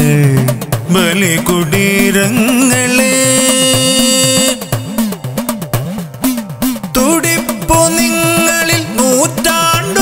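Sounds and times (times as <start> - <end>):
backing music with quick beat: 0.0 - 10.0.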